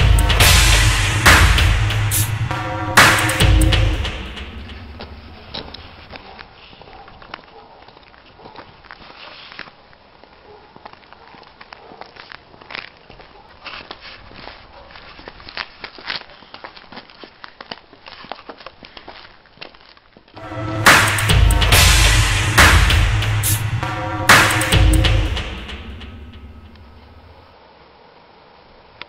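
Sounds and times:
loud music with heavy beat: 0.0 - 6.1, 20.4 - 27.4
footsteps on paved street: 4.9 - 20.4.

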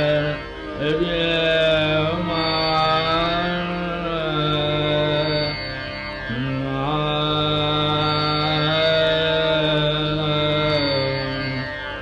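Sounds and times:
man singing long notes: 0.0 - 5.6, 6.3 - 11.8
steady drone: 0.0 - 12.0.

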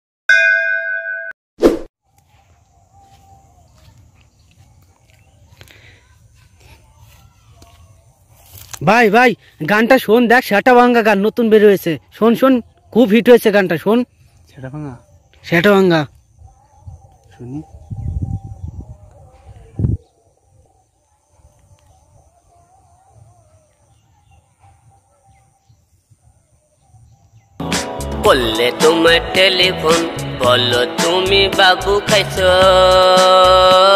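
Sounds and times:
bright metallic ding: 0.3 - 1.4
loud song with singing: 27.6 - 33.9.

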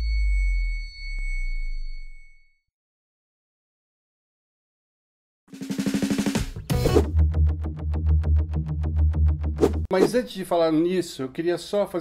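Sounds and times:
high ringing tones: 0.0 - 2.7.

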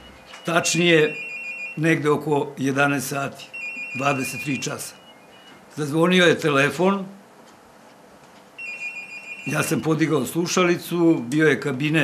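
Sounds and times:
telephone ringing: 0.0 - 2.0, 3.4 - 5.6, 8.6 - 10.4.

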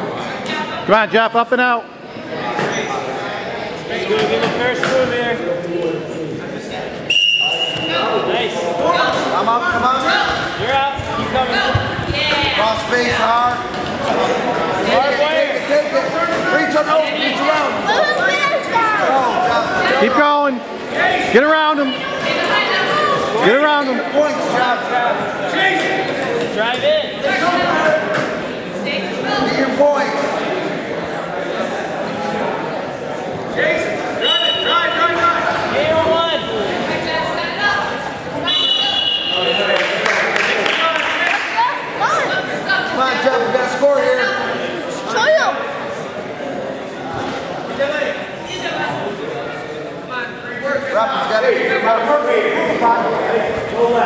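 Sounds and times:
murmur of voices: 0.0 - 54.0
whistle blast: 7.1 - 8.0, 34.2 - 35.0, 38.4 - 39.8.

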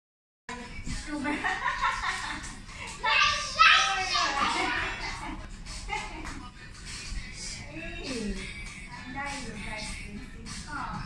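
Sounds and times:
background music: 0.5 - 11.0.

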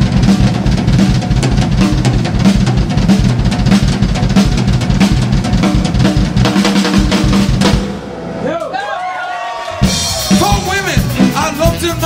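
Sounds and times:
blues band playing: 0.0 - 12.0.

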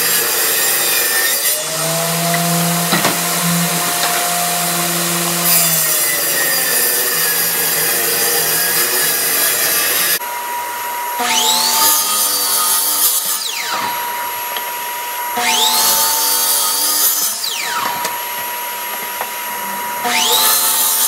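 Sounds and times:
miter saw motor whining: 0.0 - 10.2, 15.3 - 21.0
saw blade cutting board: 0.0 - 10.2.

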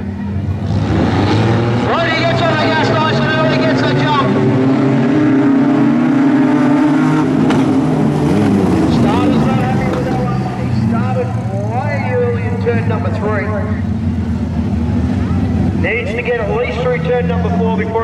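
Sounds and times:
race car engines drone: 0.0 - 18.0.

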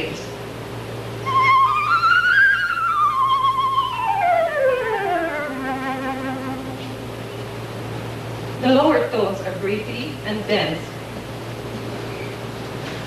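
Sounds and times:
flute playing with vibrato: 1.2 - 7.3.

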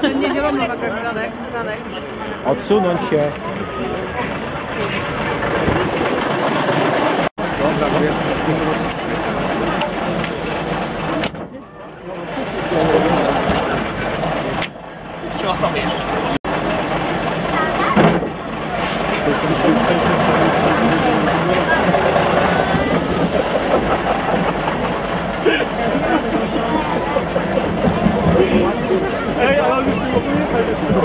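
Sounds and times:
bus diesel engine running: 0.0 - 31.0
people chattering: 0.0 - 31.0.

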